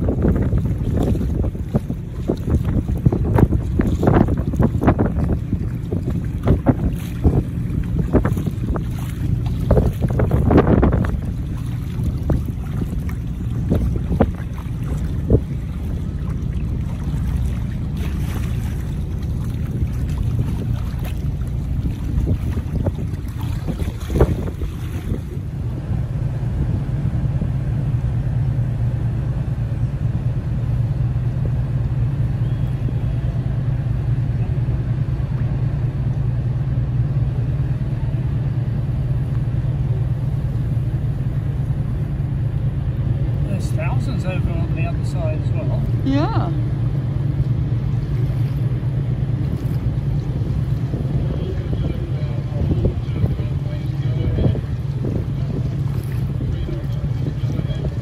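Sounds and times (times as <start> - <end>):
boat engine rumbling: 0.0 - 58.0
wind buffeting microphone: 0.0 - 58.0.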